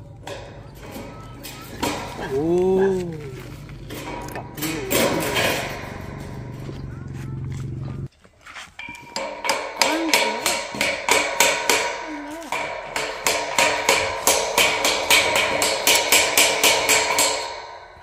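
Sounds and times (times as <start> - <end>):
hammer striking steel gate: 0.0 - 2.5, 3.8 - 6.9, 8.8 - 18.0.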